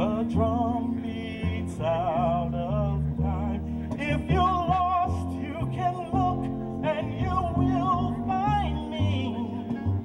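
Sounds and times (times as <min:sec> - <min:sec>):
keyboard: 0:00.0 - 0:10.0
upright bass: 0:00.0 - 0:10.0.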